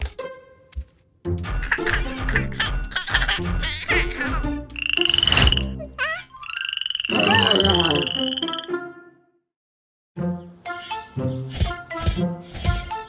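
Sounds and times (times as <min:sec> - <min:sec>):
background music: 0:00.0 - 0:06.1, 0:07.1 - 0:09.5, 0:10.2 - 0:13.0
cartoon frogs croaking: 0:01.6 - 0:08.8.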